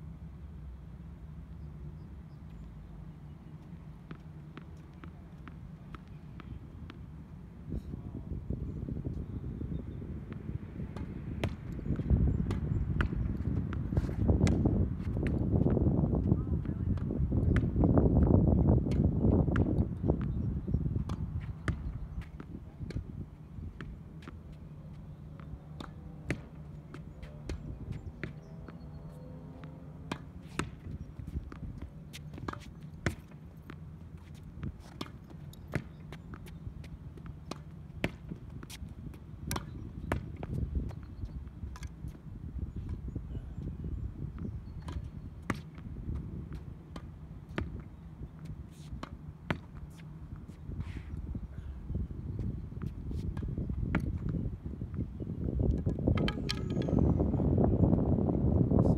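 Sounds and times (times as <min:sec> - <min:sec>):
tennis ball knocks: 0:55.7 - 0:57.3.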